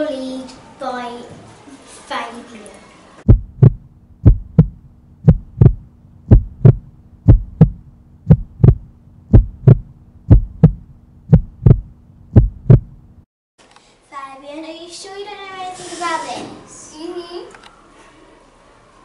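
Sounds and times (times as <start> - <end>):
steady low hum: 3.2 - 13.3
heartbeat thumps: 3.3 - 13.2.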